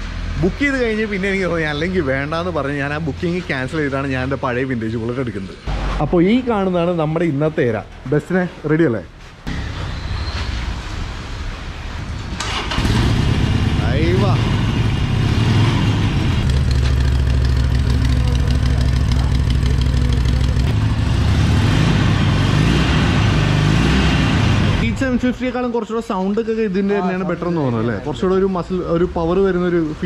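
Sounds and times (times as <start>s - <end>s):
motorcycle engine starting and idling: 12.3s - 23.6s.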